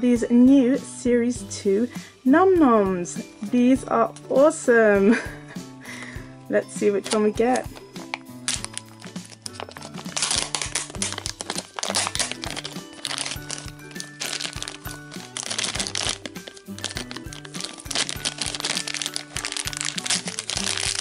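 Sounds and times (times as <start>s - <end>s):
background music: 0.0s - 21.0s
plastic packaging crinkling: 7.0s - 21.0s.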